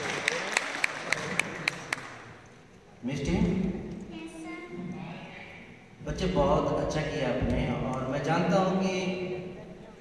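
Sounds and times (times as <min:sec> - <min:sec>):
sharp close hand claps: 0:00.0 - 0:02.3
audience applause: 0:00.0 - 0:02.4.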